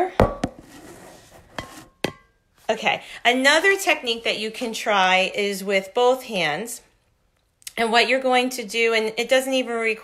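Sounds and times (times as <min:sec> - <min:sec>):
soft rubbing: 0:00.6 - 0:02.0.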